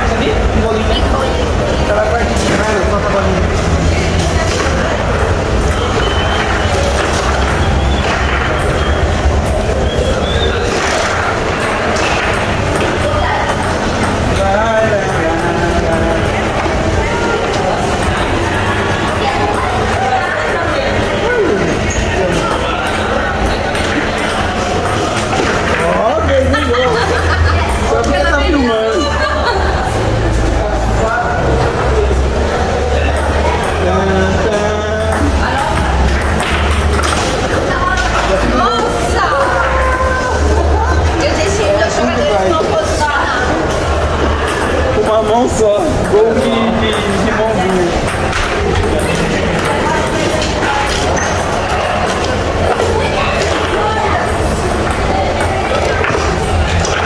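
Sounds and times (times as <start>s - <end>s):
chatter of voices: 0.0s - 57.0s
foosball ball and rods clacking: 3.5s - 9.7s, 10.5s - 14.6s, 22.2s - 26.0s, 35.0s - 38.5s, 44.1s - 53.8s.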